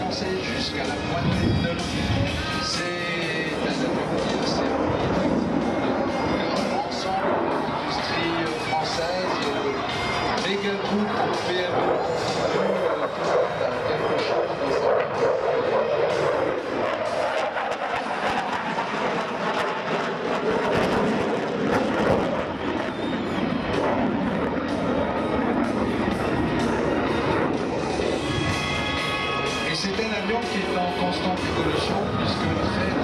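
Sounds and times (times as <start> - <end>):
jet engines with afterburner: 0.0 - 33.0.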